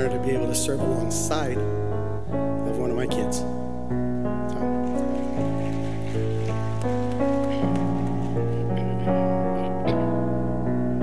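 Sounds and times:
keyboard playing slow chords: 0.0 - 11.0.

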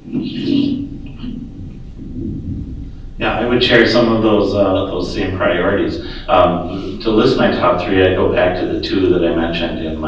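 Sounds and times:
microphone handling rumble: 0.0 - 10.0.

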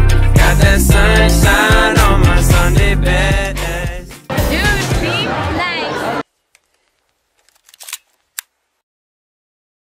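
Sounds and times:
faint rustling: 6.2 - 8.8.

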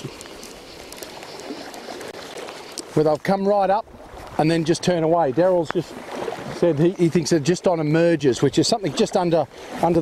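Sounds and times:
light rain on water: 0.0 - 10.0
shallow river flowing: 0.0 - 10.0.

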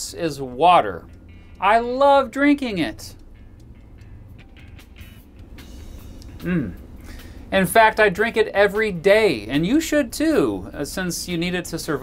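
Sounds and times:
background music: 0.0 - 12.0
man swallowing water: 6.2 - 6.8.

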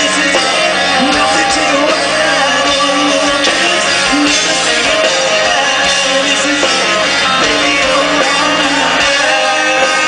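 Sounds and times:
drums: 0.0 - 10.0
electric guitars: 0.0 - 10.0.

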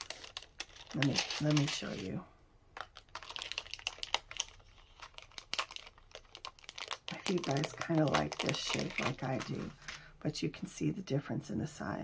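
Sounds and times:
plastic packaging crinkling: 0.0 - 10.1.

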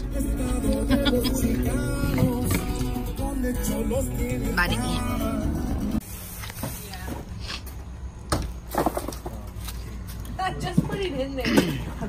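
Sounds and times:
pop music from car stereo: 0.0 - 6.0
person laughing: 0.7 - 1.7.

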